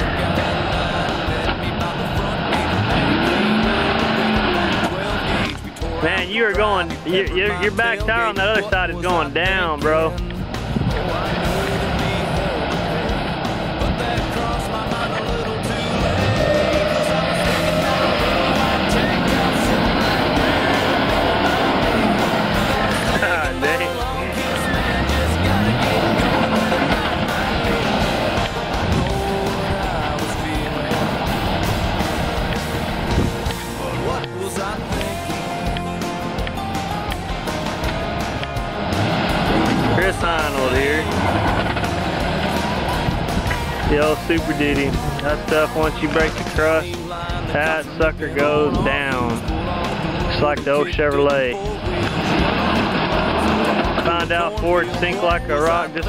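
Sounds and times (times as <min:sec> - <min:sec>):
music: 0:00.0 - 0:56.0
truck engine revving: 0:00.0 - 0:56.0
wheels spinning in mud: 0:10.5 - 0:34.2, 0:36.4 - 0:45.2, 0:51.6 - 0:54.4.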